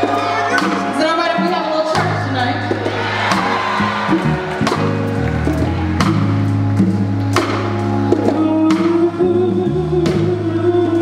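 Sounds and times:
drum and cymbal hits: 0:00.0 - 0:09.3
live soul band playing: 0:00.0 - 0:11.0.

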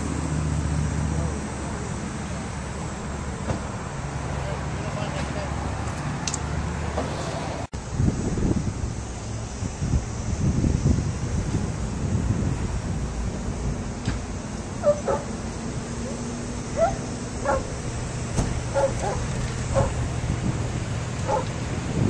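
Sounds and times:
low outdoor rumble: 0:07.7 - 0:22.0
high yelping animal calls: 0:14.8 - 0:15.4, 0:16.0 - 0:17.9, 0:18.7 - 0:20.1, 0:21.3 - 0:21.5.

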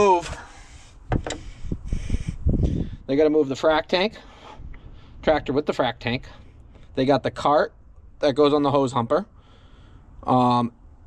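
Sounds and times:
low rumbling: 0:00.4 - 0:03.5
light knocks and rustles: 0:01.1 - 0:01.5.

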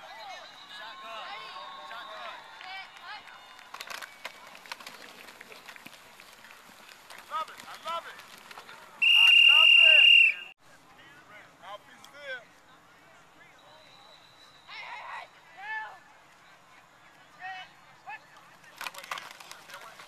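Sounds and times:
players colliding: 0:03.7 - 0:10.2
whistle blast: 0:09.0 - 0:10.6.

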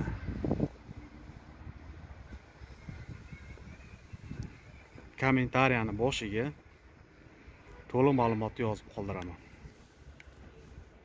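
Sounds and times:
wind rumble on microphone: 0:00.0 - 0:05.2
man speaking: 0:07.9 - 0:09.4.

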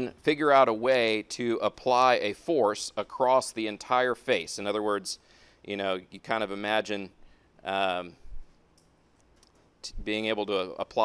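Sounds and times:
person speaking: 0:00.0 - 0:08.4, 0:09.8 - 0:11.0.

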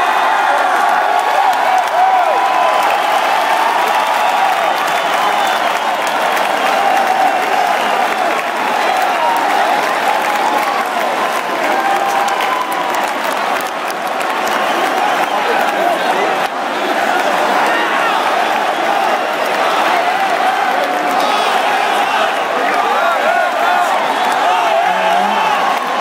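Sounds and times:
crowd cheering and shouting: 0:00.0 - 0:26.0
crowd clapping: 0:00.0 - 0:26.0.

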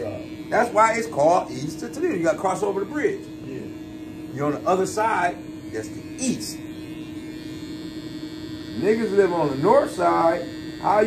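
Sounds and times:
electric hair clippers humming: 0:00.0 - 0:11.0.

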